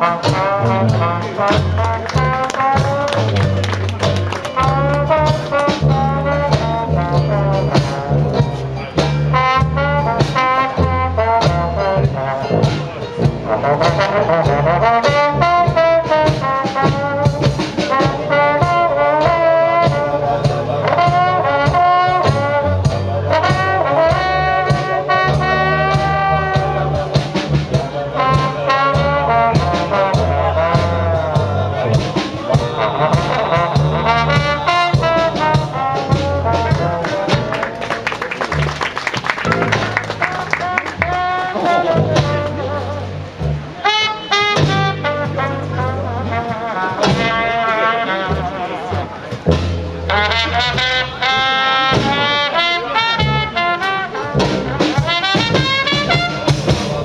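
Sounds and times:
dixieland jazz band playing: 0:00.0 - 0:57.0.

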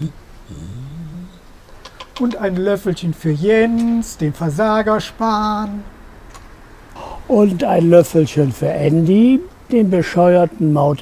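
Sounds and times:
short rising voice sound: 0:00.0 - 0:01.4.

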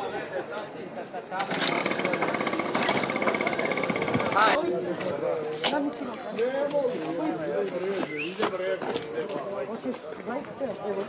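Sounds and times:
fast buzzing rattle: 0:01.4 - 0:04.6.

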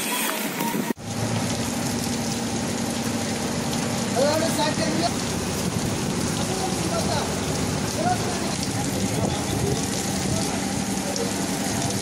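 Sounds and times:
heavy rain on hard surfaces: 0:00.0 - 0:12.0.

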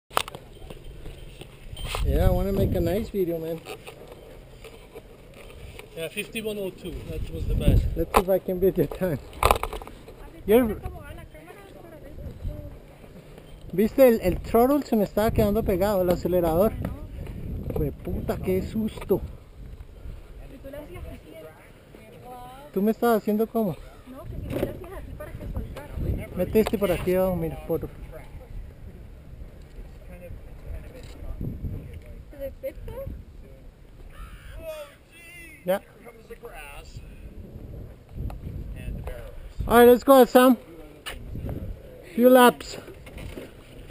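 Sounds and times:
wind rumble on microphone: 0:00.9 - 0:03.2, 0:06.8 - 0:08.2, 0:09.2 - 0:11.4, 0:12.0 - 0:12.8, 0:13.9 - 0:21.3, 0:24.1 - 0:34.7, 0:36.8 - 0:40.1, 0:41.1 - 0:42.0.

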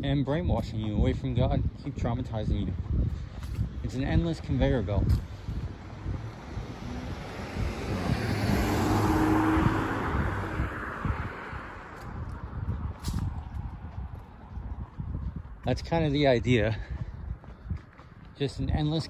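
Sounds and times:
car driving past: 0:05.9 - 0:13.4.

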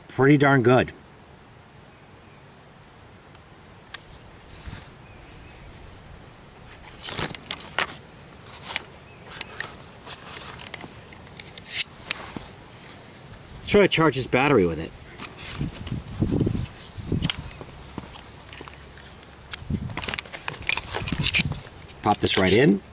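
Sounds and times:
plastic clicks and rattles: 0:19.5 - 0:22.6.

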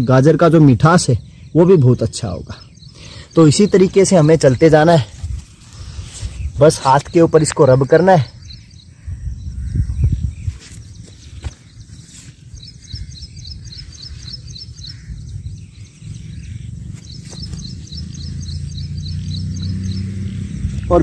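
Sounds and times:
small bird chirping: 0:00.0 - 0:21.0.

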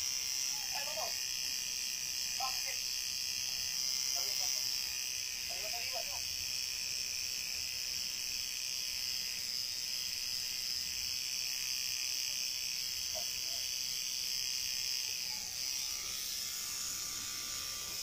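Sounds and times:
tattoo machine buzzing: 0:00.0 - 0:18.0.

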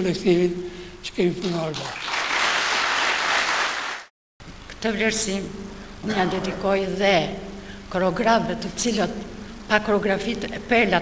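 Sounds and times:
audience applauding: 0:01.5 - 0:04.1.

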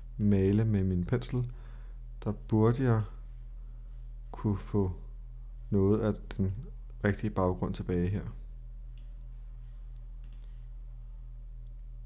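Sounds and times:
steady low hum: 0:00.0 - 0:12.0
computer mouse clicks: 0:09.9 - 0:10.6.

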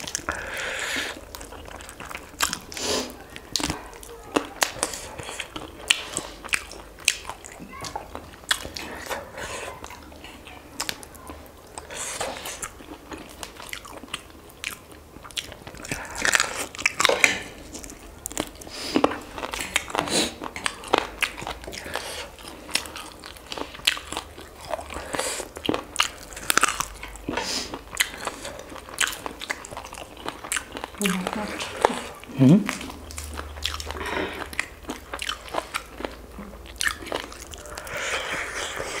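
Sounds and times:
crunchy eating and chewing: 0:00.0 - 0:39.0.

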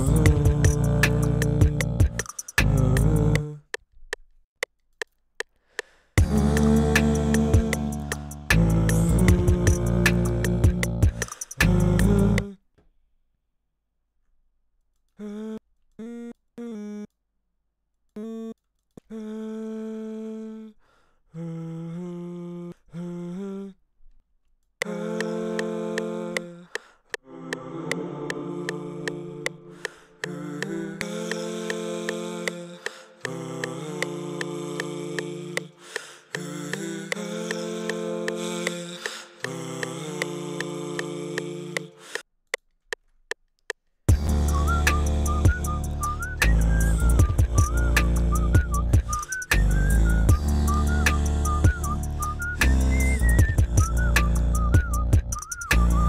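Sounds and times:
high gliding vocal melody: 0:00.0 - 0:02.0, 0:06.2 - 0:11.0, 0:27.3 - 0:29.7, 0:44.1 - 0:54.7
deep hummed bass: 0:00.0 - 0:03.5, 0:06.2 - 0:12.5, 0:44.1 - 0:56.0
layered hummed vocal chords: 0:00.0 - 0:03.6, 0:06.2 - 0:12.6, 0:24.8 - 0:26.6, 0:27.2 - 0:42.0, 0:44.1 - 0:54.9
beatboxed drums: 0:00.0 - 0:04.3, 0:05.0 - 0:12.6, 0:24.8 - 0:42.2, 0:44.1 - 0:56.0
regular ticking: 0:00.0 - 0:12.5, 0:32.4 - 0:52.0.

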